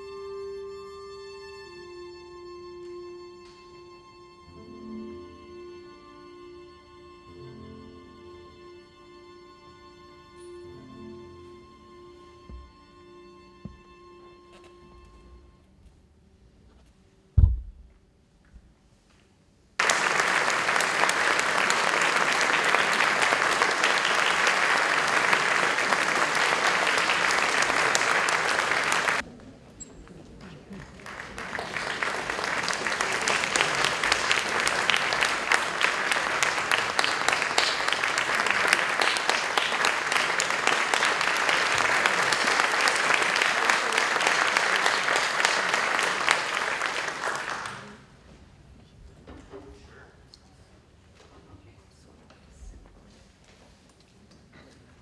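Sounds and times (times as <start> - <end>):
audience applauding: 19.8 - 29.2, 30.4 - 48.1.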